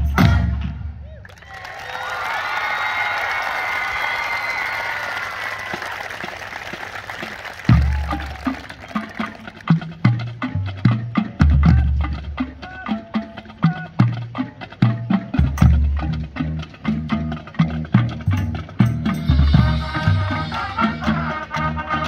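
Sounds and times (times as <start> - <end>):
marching band music: 0.0 - 1.0, 3.6 - 22.0
crowd cheering and applauding: 1.2 - 9.8
sharp percussion strikes: 7.6 - 22.0
bass drum and brass hits: 19.1 - 22.0.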